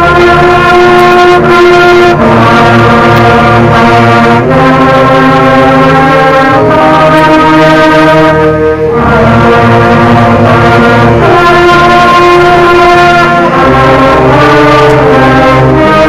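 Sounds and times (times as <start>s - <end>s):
concert band playing a march: 0.0s - 16.0s.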